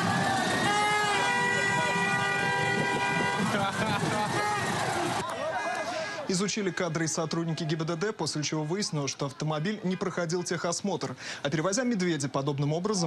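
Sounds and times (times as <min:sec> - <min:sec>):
horn long steady note: 0:00.0 - 0:05.2
people's voices: 0:00.0 - 0:13.0.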